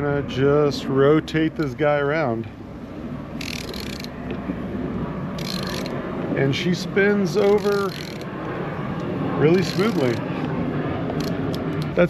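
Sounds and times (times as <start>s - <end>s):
outboard motor turning over: 5.4s - 6.0s.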